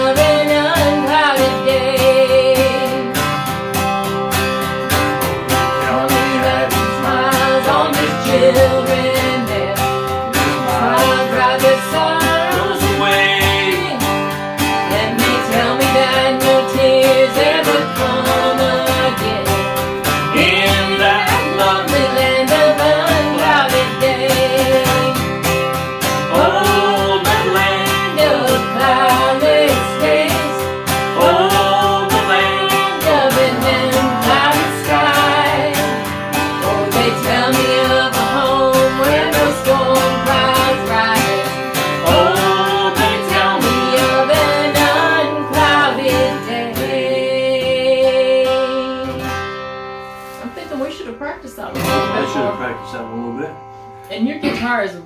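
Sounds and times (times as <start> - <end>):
man and woman singing: 0.0 - 3.5, 5.2 - 49.4, 51.8 - 52.7
strummed acoustic guitar: 0.0 - 55.0.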